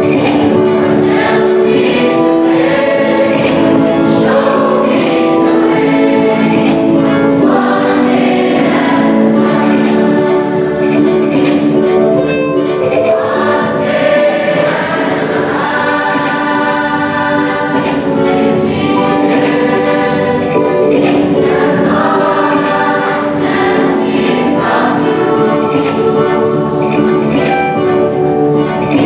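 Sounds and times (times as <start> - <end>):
choir singing a slow song: 0.0 - 29.0
rhythmic accompaniment: 0.0 - 29.0.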